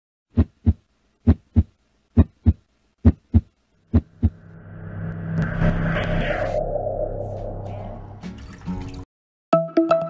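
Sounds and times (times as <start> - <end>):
heartbeat thumps: 0.3 - 4.4.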